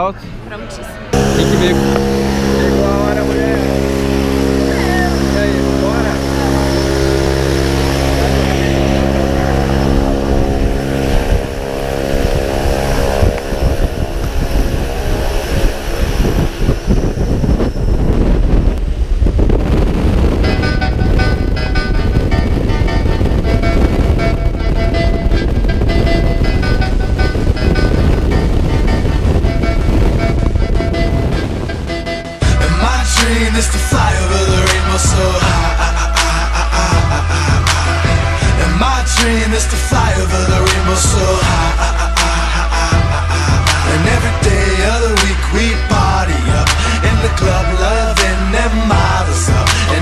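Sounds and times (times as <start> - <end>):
voices: 0.0 - 12.2
propeller aircraft engine running: 1.1 - 50.0
music with steady beat: 29.8 - 50.0.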